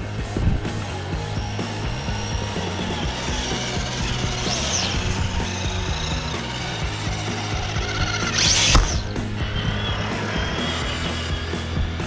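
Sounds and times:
toy truck motor whirring: 0.9s - 12.0s.

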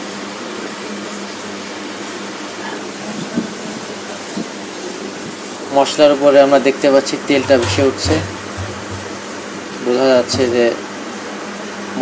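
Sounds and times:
spatula knocking on pan: 7.4s - 9.4s, 10.2s - 10.8s.

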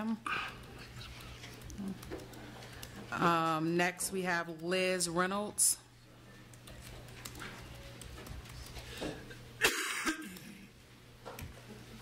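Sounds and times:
person coughing: 9.6s - 10.7s.

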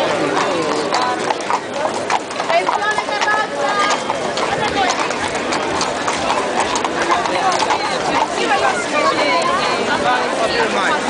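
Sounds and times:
crowd chatter: 0.0s - 11.0s
hooves clip-clopping on asphalt: 0.0s - 11.0s.

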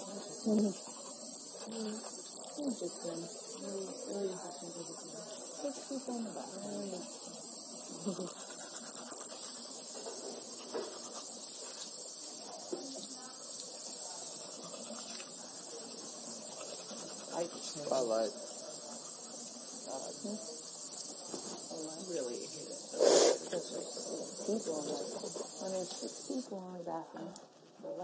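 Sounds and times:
indistinct talking: 1.5s - 28.0s
steady high hiss: 9.4s - 26.5s.

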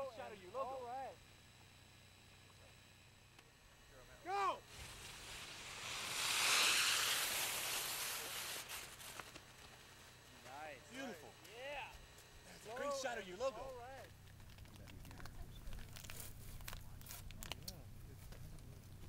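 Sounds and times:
people shouting calls: 4.2s - 4.7s
rushing hiss: 4.6s - 10.0s.

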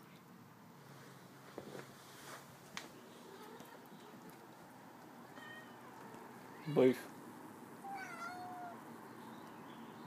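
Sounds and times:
cat meowing softly: 3.2s - 4.2s, 5.3s - 6.8s, 7.8s - 8.9s.

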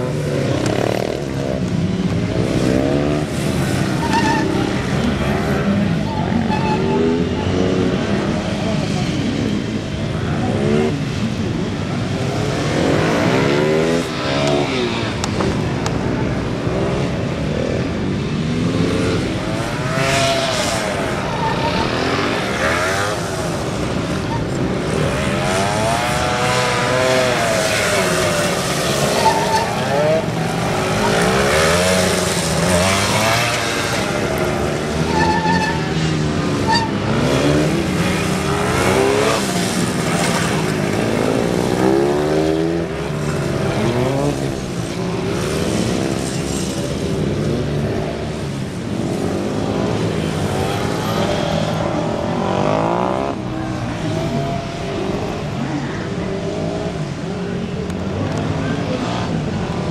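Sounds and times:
motorcycle engine revving: 16.2s - 59.4s.

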